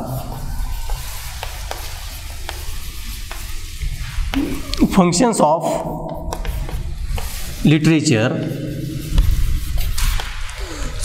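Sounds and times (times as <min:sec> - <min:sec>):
steady hiss: 0:00.0 - 0:08.1
chalk scratching on blackboard: 0:00.0 - 0:11.0.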